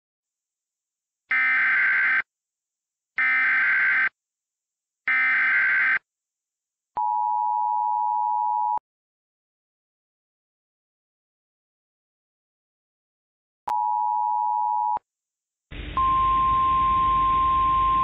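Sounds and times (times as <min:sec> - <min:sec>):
two-tone alert signal: 0:16.0 - 0:18.0.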